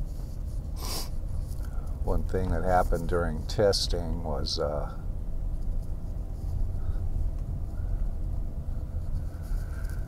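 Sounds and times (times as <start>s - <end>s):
car engine rumbling: 0.0s - 10.0s
road noise inside car: 0.0s - 10.0s.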